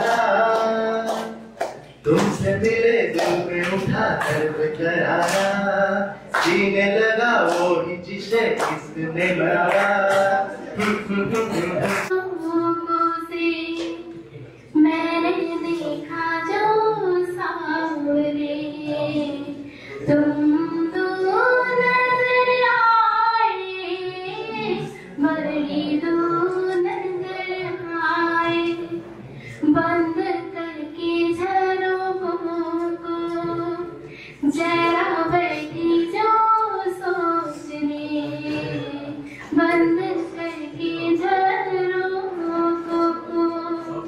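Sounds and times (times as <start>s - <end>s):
woman singing into microphone: 0.0s - 44.0s.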